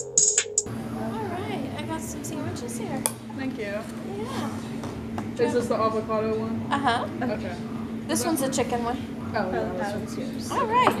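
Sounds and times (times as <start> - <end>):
cafe background chatter: 0.9 - 11.0.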